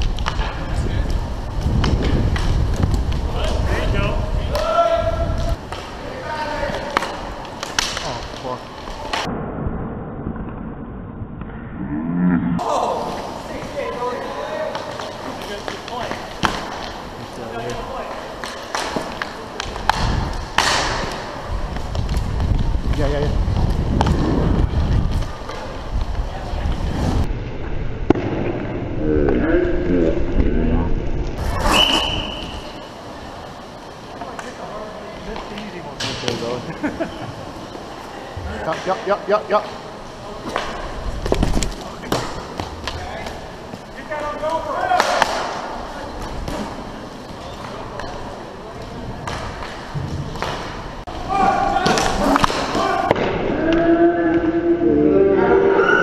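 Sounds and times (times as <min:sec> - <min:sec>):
skate wheels rumbling on rink floor: 0:00.0 - 0:11.6, 0:12.6 - 0:54.6
sticks and puck clacking: 0:04.4 - 0:09.3, 0:13.1 - 0:23.0, 0:40.4 - 0:54.5
players shouting: 0:51.1 - 0:54.6.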